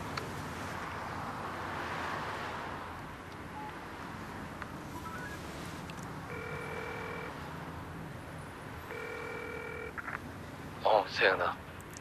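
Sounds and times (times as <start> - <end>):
traffic hum: 0.0 - 12.0
smartphone beeps: 3.6 - 3.8, 4.9 - 5.4, 6.3 - 7.3, 8.9 - 9.9
phone ringback tone: 5.0 - 5.4, 6.3 - 7.4, 8.9 - 10.0.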